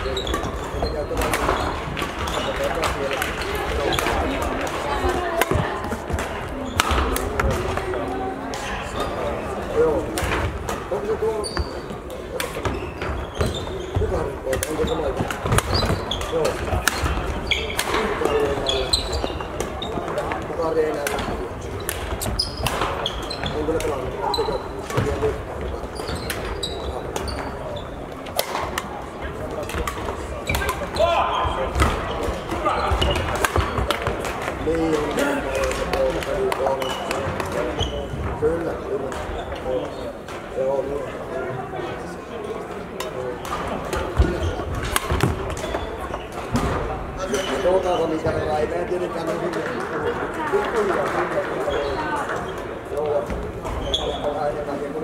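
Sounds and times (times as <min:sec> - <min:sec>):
voices echoing in hall: 0:00.0 - 0:55.0
racket hitting shuttlecock: 0:05.4 - 0:07.8, 0:14.5 - 0:18.8, 0:33.0 - 0:37.7, 0:43.0 - 0:45.8.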